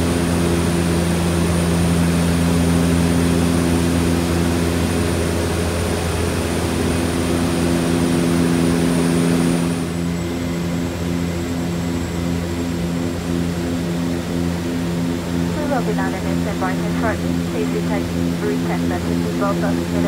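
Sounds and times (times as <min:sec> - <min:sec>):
turboprop engines droning: 0:00.0 - 0:20.0.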